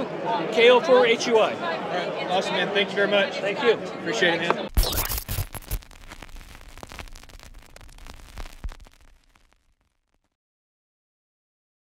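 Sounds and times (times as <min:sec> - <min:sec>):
crackly static noise: 0:04.7 - 0:10.4.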